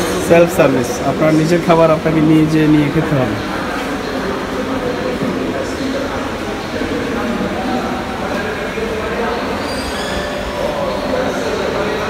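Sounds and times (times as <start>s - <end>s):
indistinct voices: 0.0s - 12.0s.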